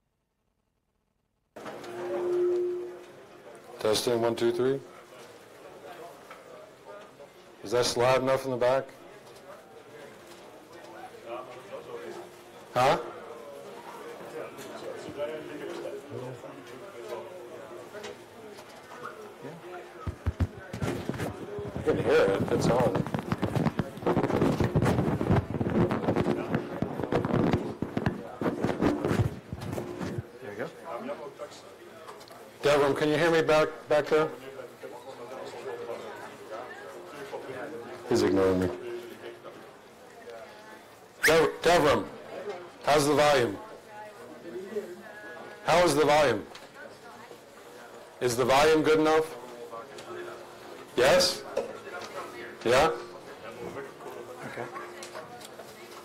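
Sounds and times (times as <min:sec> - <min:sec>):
room noise: 0:00.2 - 0:56.0
low voices murmuring: 0:01.6 - 0:08.0, 0:09.0 - 0:32.6, 0:34.3 - 0:41.3
steady mid-pitched tone: 0:01.9 - 0:03.2
microphone rustling and scraping: 0:20.1 - 0:30.3.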